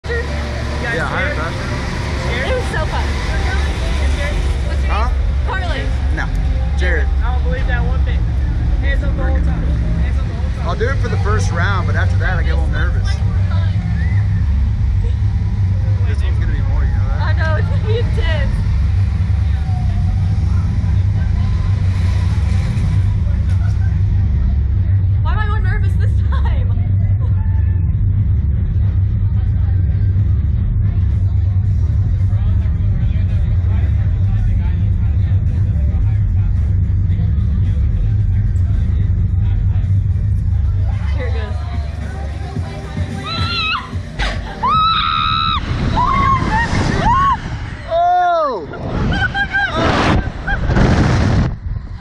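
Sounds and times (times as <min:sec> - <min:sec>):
riders shouting and laughing: 0:42.6 - 0:50.7
wind buffeting microphone: 0:48.6 - 0:52.0.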